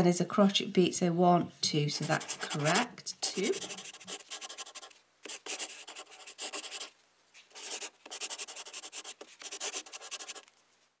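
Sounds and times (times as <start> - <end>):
pen scratching on paper: 1.9 - 6.9, 7.5 - 10.4.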